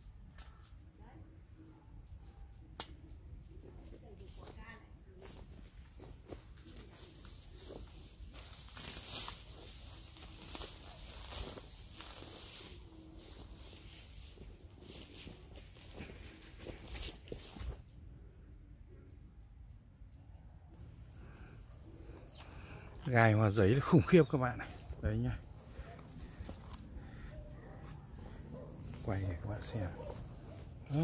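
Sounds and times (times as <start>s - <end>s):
leaves and branches rustling: 3.8s - 17.9s, 20.8s - 31.0s.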